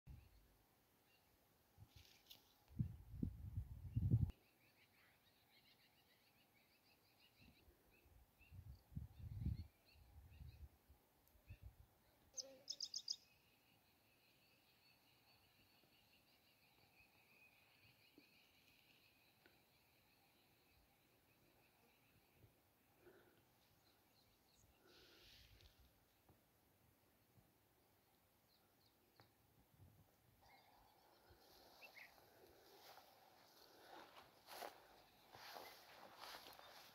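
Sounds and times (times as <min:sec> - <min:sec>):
birds chirping: 0:11.4 - 0:25.3, 0:30.4 - 0:36.9.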